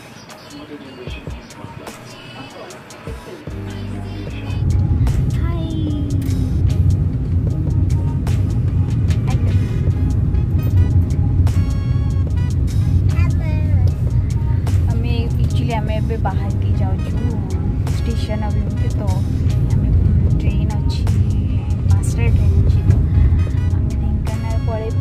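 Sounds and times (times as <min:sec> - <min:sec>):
music: 0:00.0 - 0:25.0
car cabin rumble: 0:01.0 - 0:25.0.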